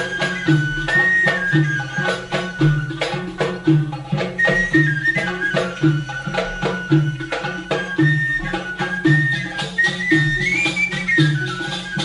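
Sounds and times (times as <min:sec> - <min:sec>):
ensemble playing arabic song: 0:00.0 - 0:12.0
high held melody line: 0:00.0 - 0:12.0.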